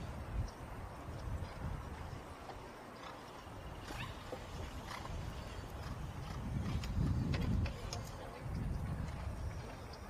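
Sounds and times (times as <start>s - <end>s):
horse hoofbeats on grass: 1.0s - 10.0s.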